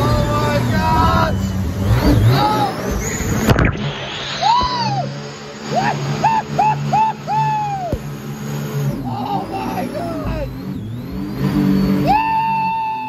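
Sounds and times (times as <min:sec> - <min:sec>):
riders whooping and yelling: 0:00.0 - 0:03.5, 0:04.3 - 0:13.0
jet boat engine drone: 0:00.0 - 0:13.0.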